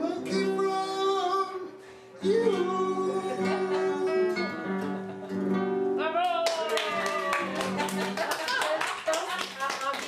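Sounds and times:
guitar song: 0.0 - 8.4
rapid hand clapping: 6.2 - 10.0.

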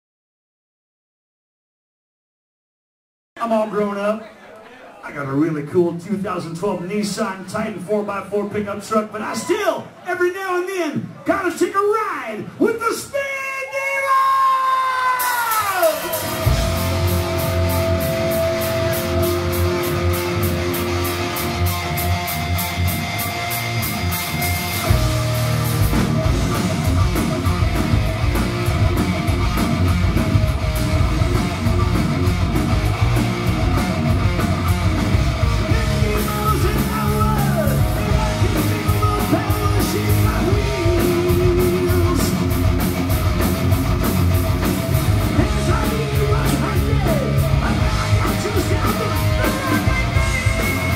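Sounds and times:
distorted electric guitars: 15.0 - 50.9
drum kit with cymbal hits: 15.1 - 50.9
heavy metal song: 15.2 - 50.9
bass guitar: 15.4 - 50.9
man singing: 35.6 - 42.6, 45.2 - 50.9.

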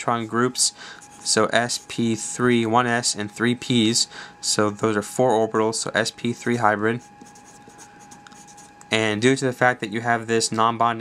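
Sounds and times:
marker scratching on surface: 1.0 - 2.2, 6.1 - 8.8.

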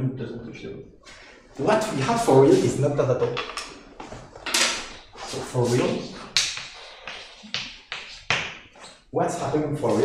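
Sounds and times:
chalk scratching on blackboard: 5.1 - 8.3, 9.8 - 10.0
chalk tapping on blackboard: 5.8 - 8.6.

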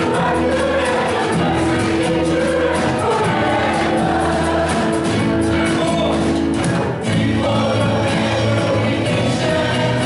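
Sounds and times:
acoustic guitars: 0.0 - 10.0
drum kit: 0.0 - 10.0
electric bass: 0.0 - 10.0
group of singers: 0.0 - 10.0
keyboard: 0.0 - 10.0.

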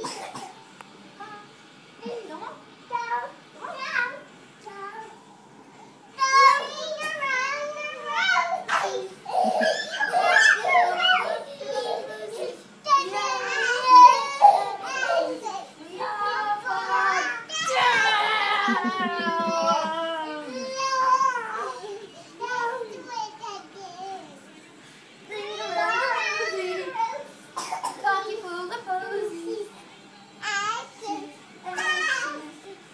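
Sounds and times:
young children's voices: 6.2 - 24.4, 25.3 - 29.7, 30.4 - 32.9
children's wordless calls: 7.6 - 21.8.

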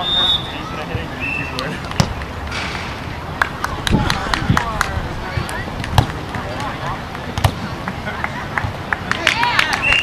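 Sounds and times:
people's voices outdoors: 0.0 - 10.0.

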